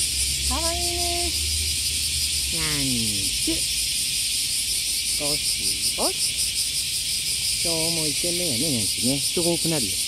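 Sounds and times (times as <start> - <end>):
insects chorus pulsing hiss: 0.0 - 10.0.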